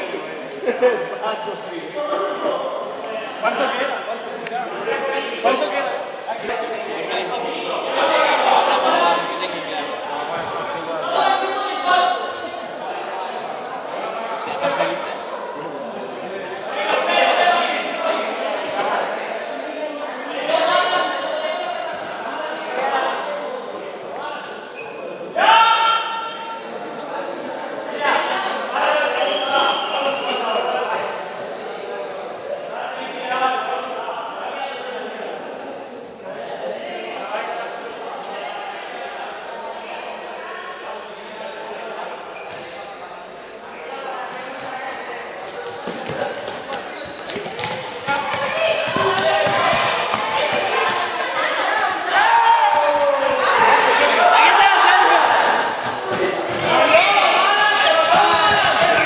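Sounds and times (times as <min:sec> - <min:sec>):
players shouting: 0:45.7 - 0:59.0.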